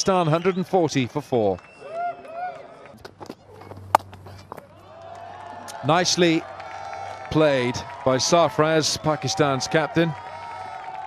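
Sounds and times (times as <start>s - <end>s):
cricket bat striking ball: 3.0s - 4.8s.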